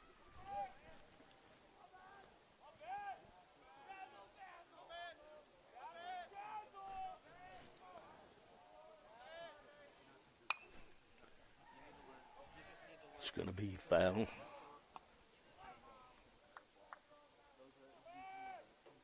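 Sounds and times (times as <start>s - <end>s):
faint voices chattering: 0.0s - 19.0s.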